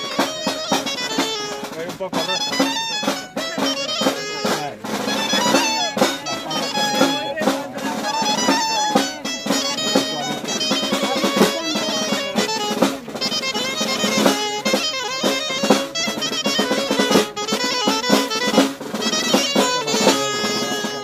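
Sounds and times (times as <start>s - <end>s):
folk dance tune on wooden pipe: 0.0s - 21.0s
snare drum rolls: 0.0s - 21.0s.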